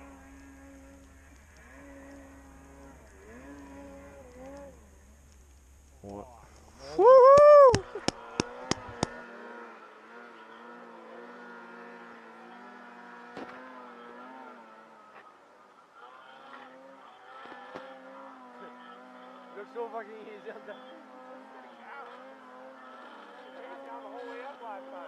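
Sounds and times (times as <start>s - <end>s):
distant snowbike engine: 0.0s - 25.0s
sharp clicks: 7.4s - 9.2s.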